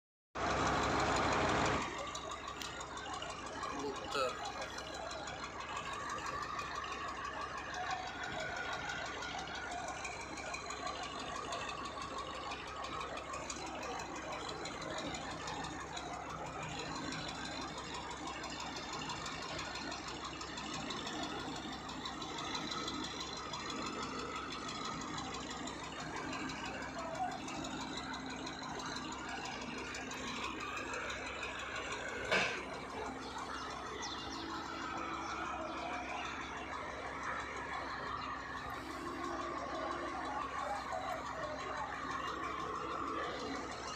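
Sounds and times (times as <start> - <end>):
crane engine running: 0.4 - 43.9
indistinct voices: 0.7 - 43.9.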